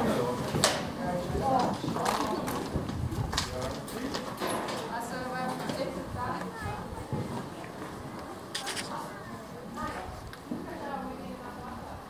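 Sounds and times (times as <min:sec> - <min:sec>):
people talking: 0:03.4 - 0:12.0.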